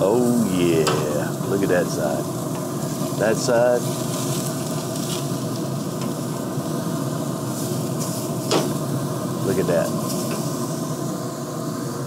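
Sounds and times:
steaks sizzling on grill: 0.0 - 12.0.

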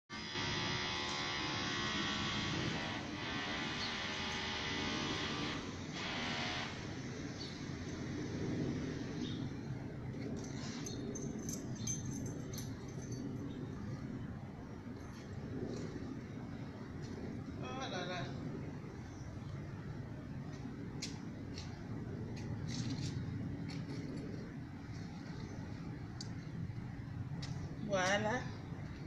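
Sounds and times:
buzzing motor drone: 0.1 - 9.4.

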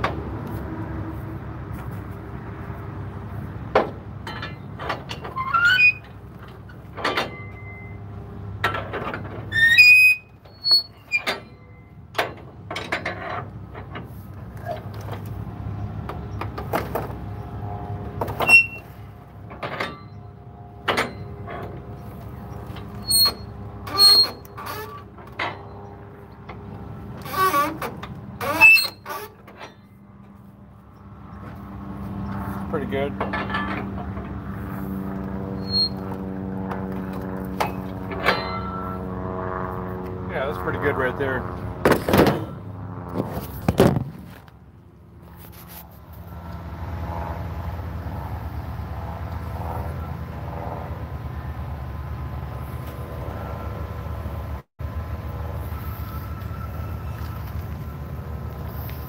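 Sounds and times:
engine running: 0.0 - 59.0.

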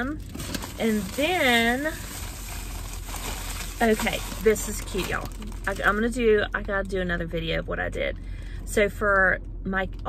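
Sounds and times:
plastic bag rustling: 0.2 - 6.1.

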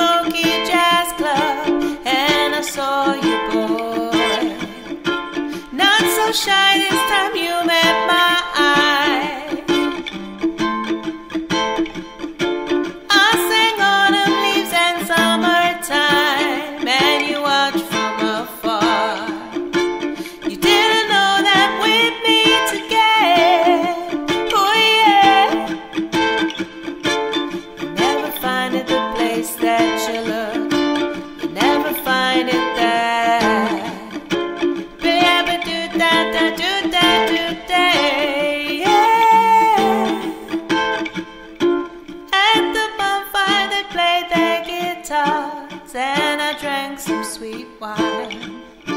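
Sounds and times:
woman singing: 0.0 - 10.4, 13.0 - 26.6, 27.5 - 41.2, 42.0 - 48.9
ukulele strummed in reggae rhythm: 0.0 - 48.9.

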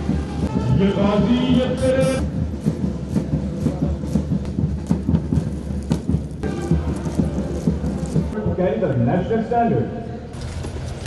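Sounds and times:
marching boots on hard ground: 0.0 - 8.4.

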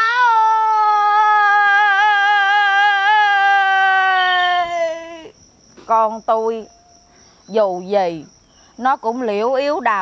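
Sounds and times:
woman wailing: 0.0 - 5.3.

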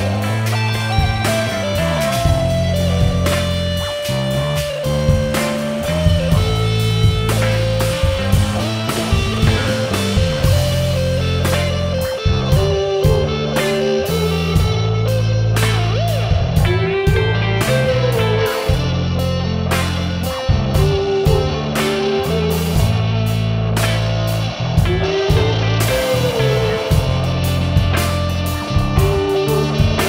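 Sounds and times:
drum and cymbal hits: 0.0 - 30.0
electric guitar bent notes: 0.0 - 30.0
sustained bass notes: 0.0 - 30.0.

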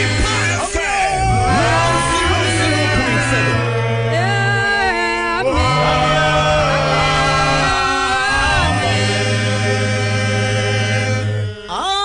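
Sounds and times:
group singing a worship song: 0.0 - 12.0.

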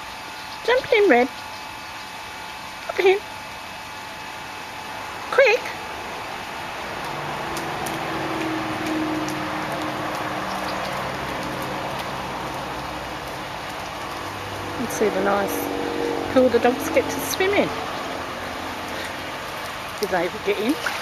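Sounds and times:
steady background noise: 0.0 - 21.0
low hum: 0.1 - 21.0.

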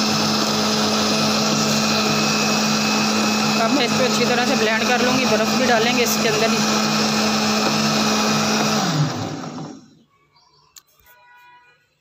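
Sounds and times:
blender motor running: 0.0 - 10.0.

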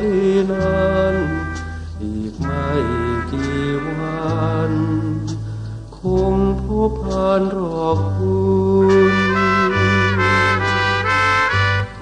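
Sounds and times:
orchestral accompaniment: 0.0 - 5.4, 8.7 - 12.0
man singing a ballad: 0.0 - 11.0.

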